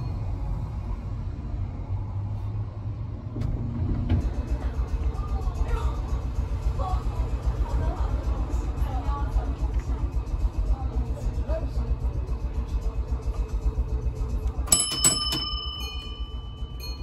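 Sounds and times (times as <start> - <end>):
tram rumbling along track: 0.0 - 17.0.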